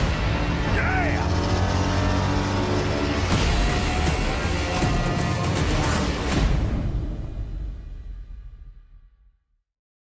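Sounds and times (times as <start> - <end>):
heavy car engine running: 0.0 - 6.9.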